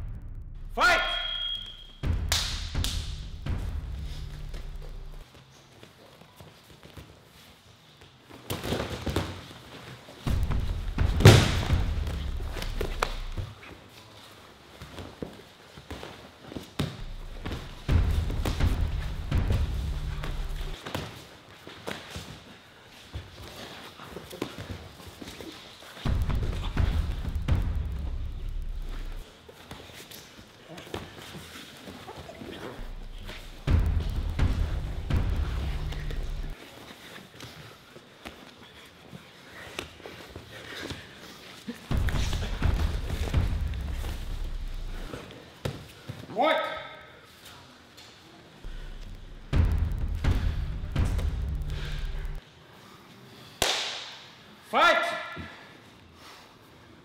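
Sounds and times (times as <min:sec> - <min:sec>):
bodies thudding on mat: 0:10.3 - 0:13.5.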